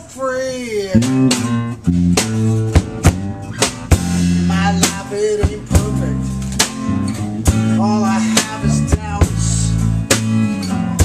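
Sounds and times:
electric bass: 0.8 - 11.0
drum kit: 0.9 - 11.0
strummed guitar: 0.9 - 11.0
sharp drum hits: 1.0 - 7.8.

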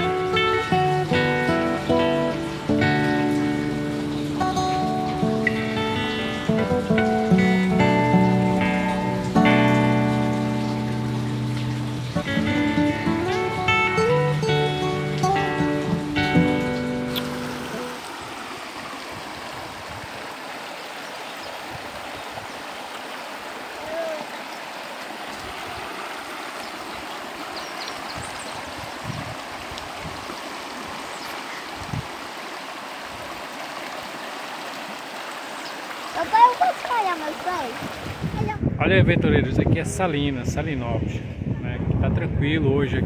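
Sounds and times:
acoustic guitar music: 0.0 - 18.0
flowing water rushing: 0.0 - 38.8.

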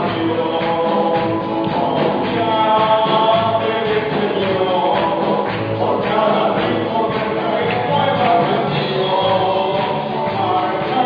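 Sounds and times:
band with guitars: 0.0 - 11.0
group singing gospel song: 0.0 - 11.0.

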